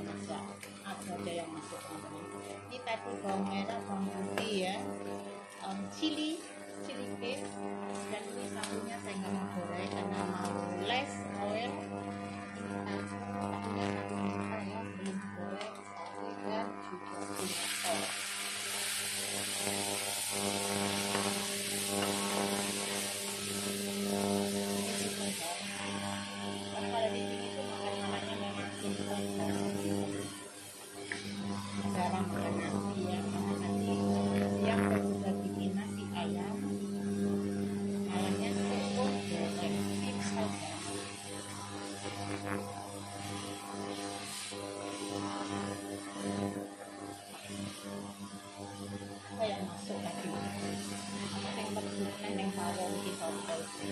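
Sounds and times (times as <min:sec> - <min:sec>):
loud oil sizzle: 0:00.0 - 0:53.9
steady hum: 0:00.0 - 0:53.9
spatula scraping wok: 0:17.4 - 0:20.4.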